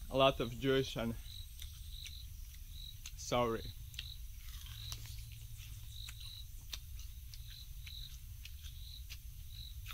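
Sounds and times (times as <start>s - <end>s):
low steady rumble: 0.0s - 9.8s.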